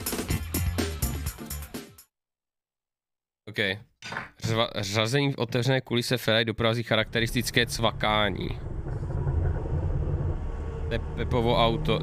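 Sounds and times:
car engine idling: 0:07.0 - 0:12.0.

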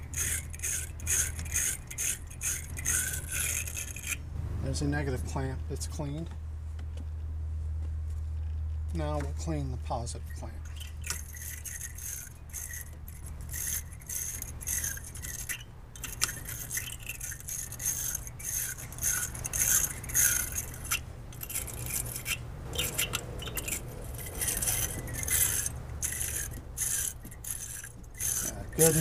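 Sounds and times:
wire brush scraping metal clamp: 0:00.0 - 0:04.2, 0:10.3 - 0:29.0
steady low hum: 0:00.0 - 0:29.0.

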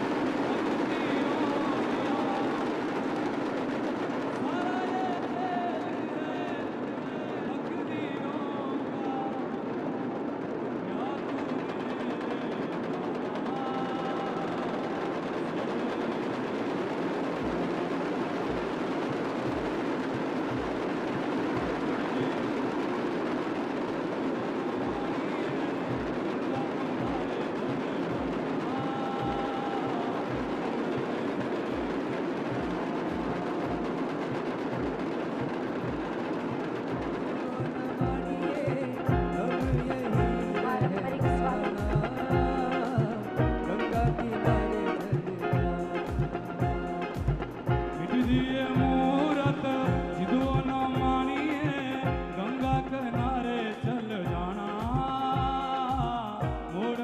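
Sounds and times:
drums rattled rapidly: 0:00.0 - 0:57.0
deep drum beat: 0:17.3 - 0:22.9, 0:24.7 - 0:57.0.

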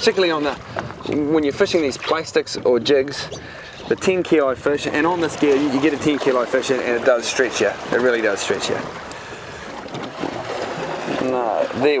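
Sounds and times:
wind on microphone: 0:00.0 - 0:06.4
sea water splashing: 0:00.0 - 0:12.0.

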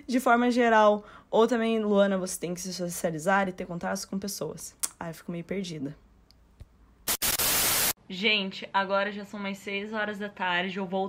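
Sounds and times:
burst of white-noise static: 0:07.0 - 0:08.0.

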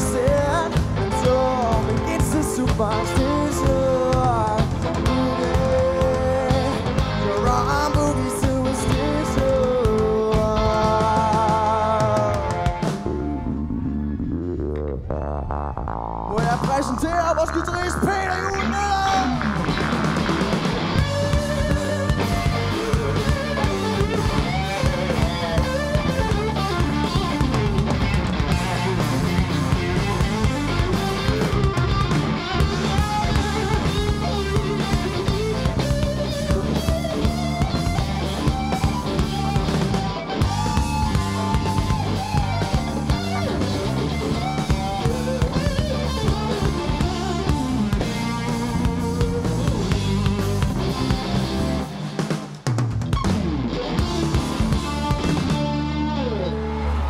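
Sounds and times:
electric guitar solo: 0:00.0 - 0:52.4, 0:53.0 - 0:57.0
bass guitar: 0:00.0 - 0:57.0
drums: 0:00.0 - 0:57.0.

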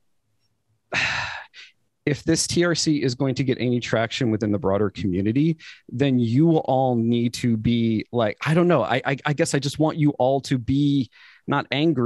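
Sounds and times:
man sighing: 0:00.9 - 0:01.7.

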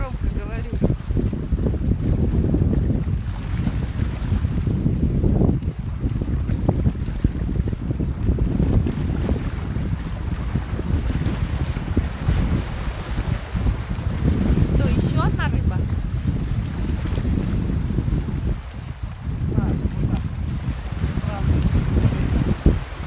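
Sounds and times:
wind buffeting microphone: 0:00.0 - 0:23.0
small waves washing over rocks: 0:08.4 - 0:23.0.

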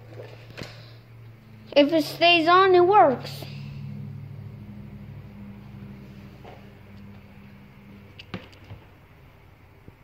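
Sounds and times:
tv electrical hum: 0:00.0 - 0:10.0.

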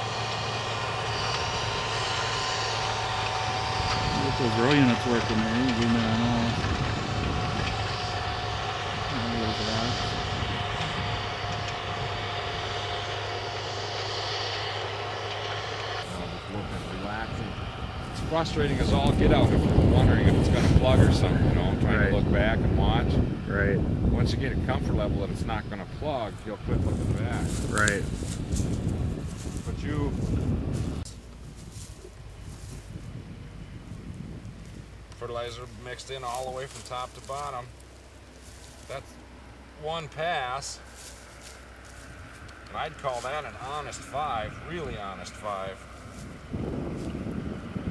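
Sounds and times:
wind rumbling on microphone: 0:00.0 - 0:13.6, 0:16.0 - 0:39.3, 0:40.2 - 0:47.9
tractor engine droning: 0:00.0 - 0:47.9
crop stubble rustle: 0:26.3 - 0:39.4, 0:40.2 - 0:47.2.

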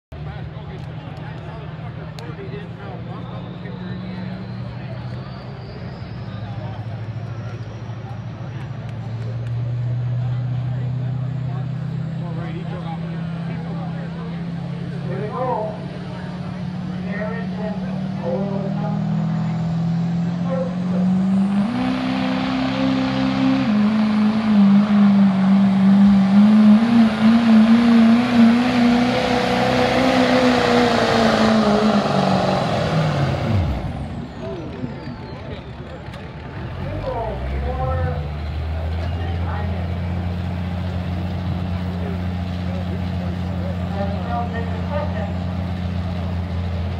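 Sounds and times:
diesel truck engine at full throttle: 0:00.1 - 0:46.9
engine low idle: 0:33.2 - 0:46.9.

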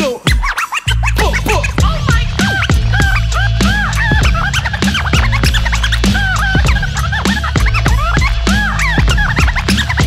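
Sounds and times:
hip-hop beat with bass line: 0:00.0 - 0:10.0
record scratching: 0:00.0 - 0:10.0.

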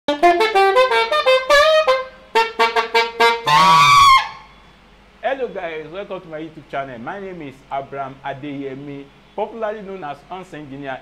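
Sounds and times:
alto saxophone playing: 0:00.1 - 0:04.7.

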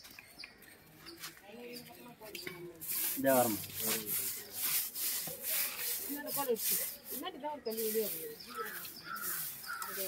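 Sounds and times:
stick broom brushing brick wall: 0:02.8 - 0:10.0.

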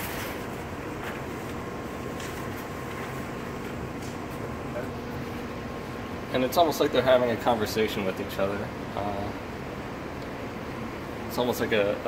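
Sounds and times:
faint even room hum: 0:00.0 - 0:12.0.

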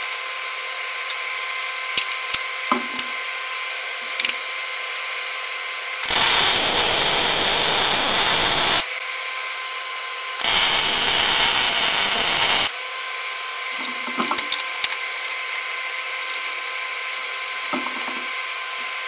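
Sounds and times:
welder arc crackling and sizzling: 0:06.0 - 0:08.9, 0:10.4 - 0:12.7.

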